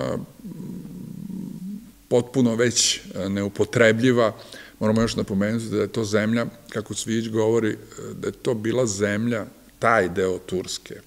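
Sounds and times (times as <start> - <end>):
man speaking: 0.0 - 0.4, 2.1 - 11.0.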